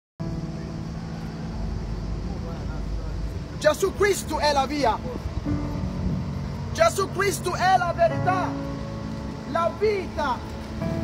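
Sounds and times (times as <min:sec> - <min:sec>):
vehicle engine drone: 0:00.2 - 0:11.0.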